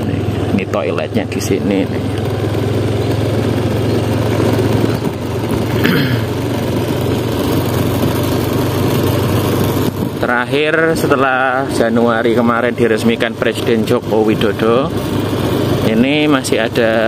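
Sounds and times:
motorcycle engine at low speed: 0:00.0 - 0:17.0.

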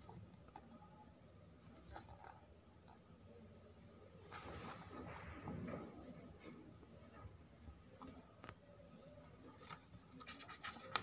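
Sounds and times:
faint scratches: 0:00.0 - 0:03.4, 0:04.2 - 0:11.0
paper pages rustling: 0:09.5 - 0:11.0.

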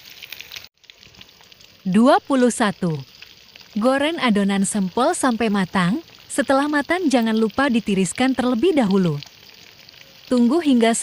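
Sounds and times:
hot oil sizzling and crackling: 0:00.0 - 0:11.0.

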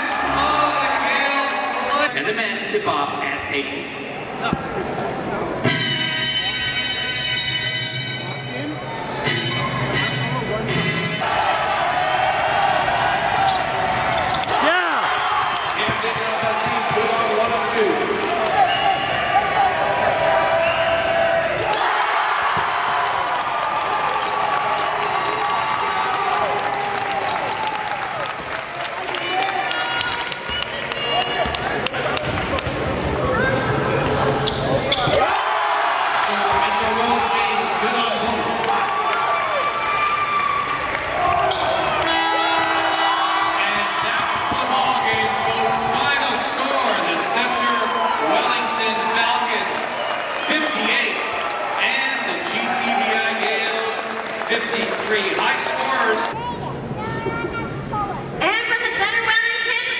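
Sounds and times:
spectators talking and shouting: 0:29.0 - 0:54.7.

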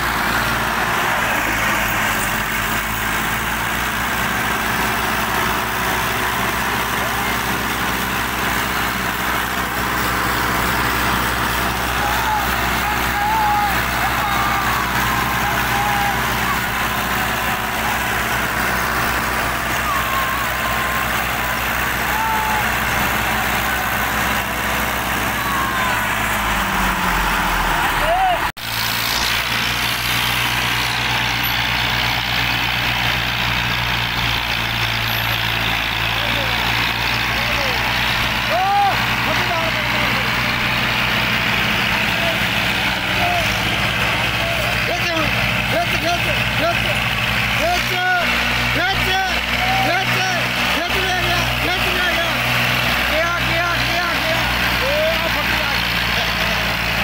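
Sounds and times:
tractor diesel engines straining: 0:00.0 - 0:57.0
people shouting: 0:11.3 - 0:28.5, 0:38.4 - 0:40.3, 0:41.9 - 0:44.9, 0:49.0 - 0:52.4.

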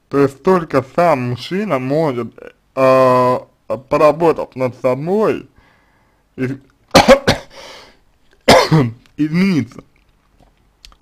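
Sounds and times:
man coughing: 0:06.9 - 0:07.8, 0:08.4 - 0:09.0.

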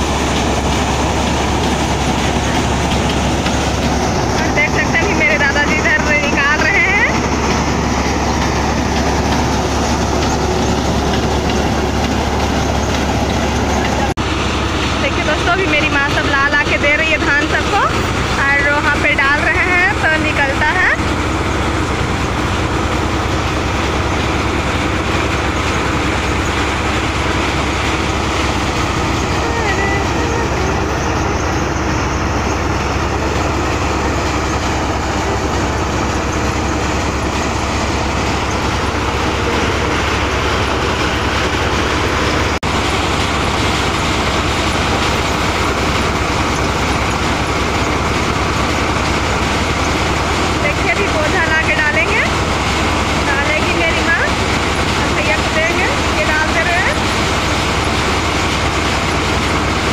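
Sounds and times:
thresher mechanical drone: 0:00.0 - 0:59.9.

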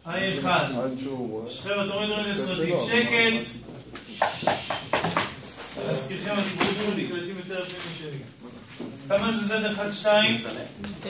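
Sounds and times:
marker squeaking on whiteboard: 0:03.4 - 0:05.8.

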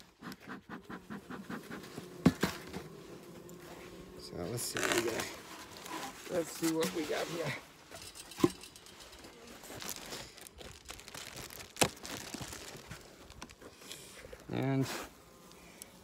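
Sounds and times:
foil insulation crinkling: 0:08.5 - 0:14.8.

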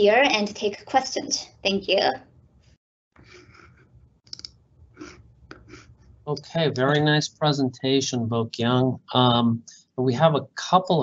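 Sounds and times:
faint room noise: 0:03.2 - 0:11.0
computer mouse clicks: 0:04.3 - 0:05.8.

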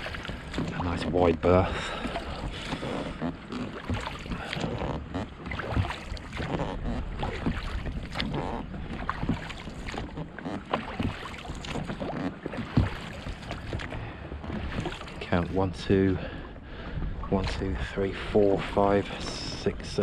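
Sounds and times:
oars knocking in oarlocks: 0:00.0 - 0:15.3
oar blades splashing: 0:00.0 - 0:20.0.

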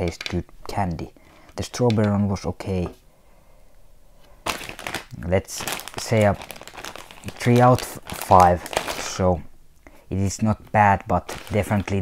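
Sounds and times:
plastic bag crinkling: 0:04.4 - 0:09.4, 0:11.2 - 0:12.0.

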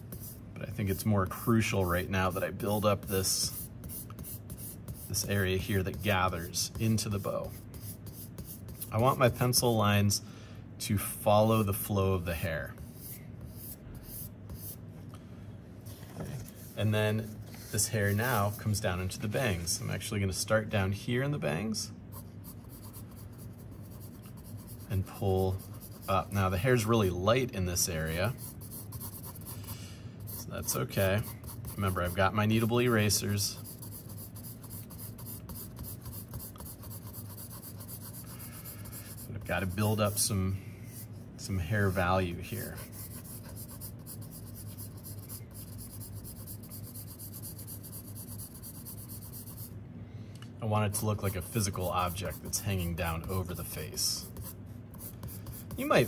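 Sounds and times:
pencil scratching on paper: 0:00.0 - 0:09.2, 0:12.8 - 0:14.8, 0:22.1 - 0:26.4, 0:28.0 - 0:29.6, 0:30.2 - 0:40.3, 0:41.7 - 0:49.7, 0:51.0 - 0:56.0.

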